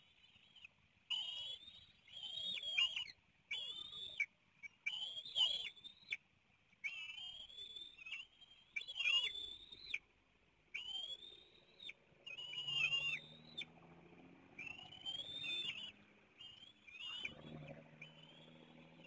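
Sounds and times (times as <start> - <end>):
eagles whistled squeals: 0.5 - 6.2, 6.8 - 10.0, 10.7 - 13.8, 14.5 - 19.0.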